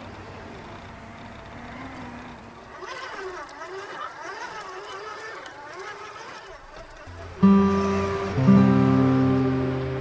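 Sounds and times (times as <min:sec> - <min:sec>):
electric motor whining: 0:01.5 - 0:10.0
music with wavering melody: 0:07.1 - 0:10.0.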